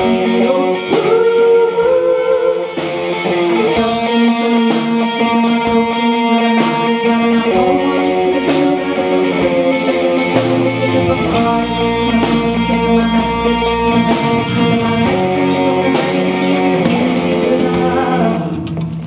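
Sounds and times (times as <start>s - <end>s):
bass guitar: 0.0s - 19.0s
electric guitar: 0.0s - 19.0s
drum beat: 10.3s - 17.8s.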